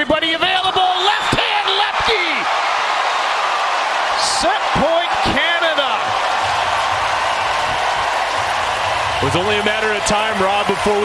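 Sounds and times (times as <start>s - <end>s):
crowd cheering and clapping: 0.0s - 11.0s.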